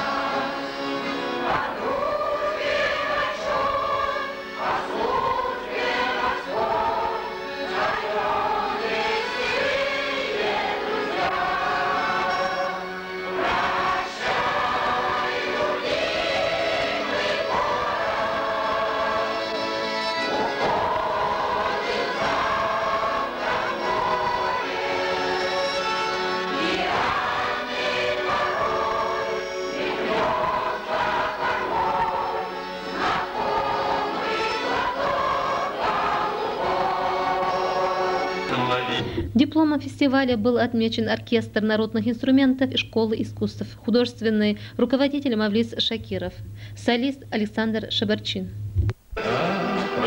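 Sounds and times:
mixed choir singing: 0:00.0 - 0:39.1, 0:49.2 - 0:50.0.

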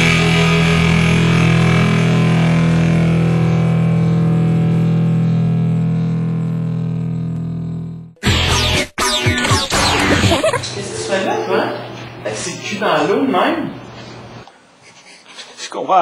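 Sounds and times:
distorted guitar chord ringing: 0:00.0 - 0:10.8.

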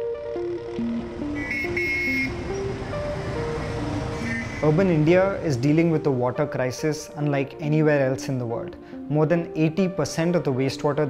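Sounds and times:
simple background music melody: 0:00.0 - 0:11.0
motorcycle and scooter traffic: 0:00.6 - 0:06.0
high-pitched vehicle horn honking: 0:01.4 - 0:02.6, 0:04.2 - 0:04.7.

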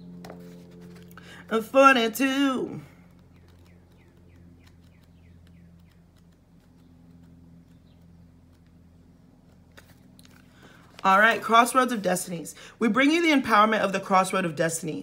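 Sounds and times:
low steady hum: 0:00.0 - 0:15.0
paper rustling: 0:09.4 - 0:11.7.

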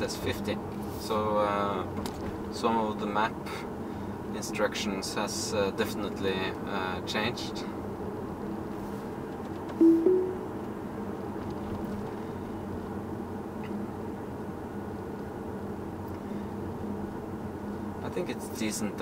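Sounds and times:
two-note tone: 0:09.8 - 0:10.5.

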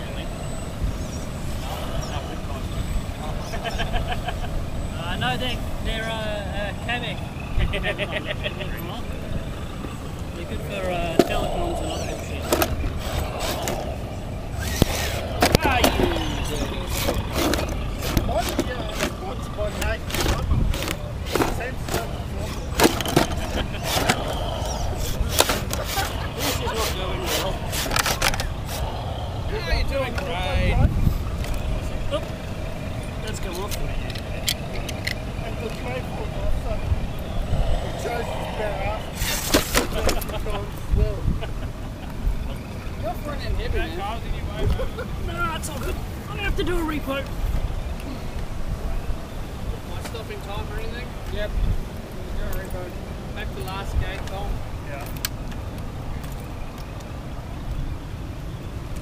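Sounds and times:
tyres and chassis scraping on stone: 0:08.8 - 0:41.1.

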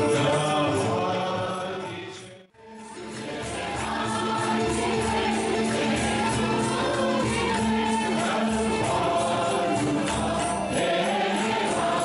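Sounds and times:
jingling percussion: 0:02.9 - 0:12.0
group singing devotional song: 0:03.1 - 0:12.0.

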